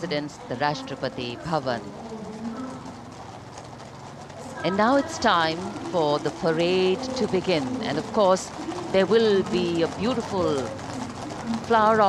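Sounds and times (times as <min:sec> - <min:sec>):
horse hooves clip-clopping on pavement: 0:00.0 - 0:12.0.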